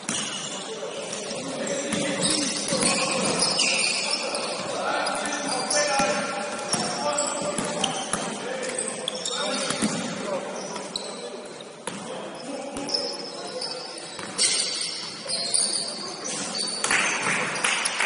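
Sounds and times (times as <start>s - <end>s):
sneakers squeaking: 0.0s - 18.0s
basketball bouncing on wooden court: 1.9s - 3.7s, 6.0s - 8.4s.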